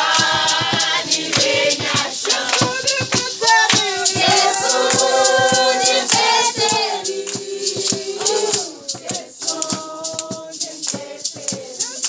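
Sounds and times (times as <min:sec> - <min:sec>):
group singing unaccompanied: 0:00.0 - 0:12.0
hand claps: 0:00.0 - 0:12.0.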